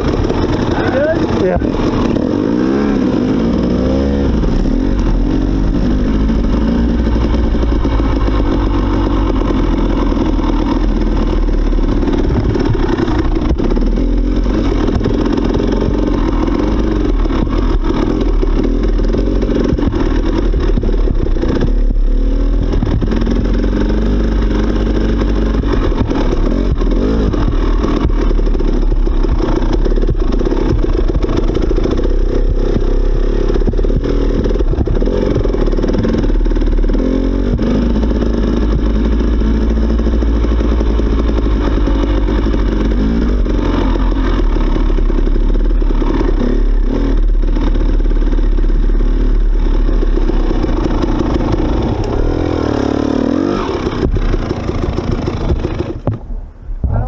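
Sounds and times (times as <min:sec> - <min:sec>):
dirt bike engine revving: 0:00.0 - 0:56.1.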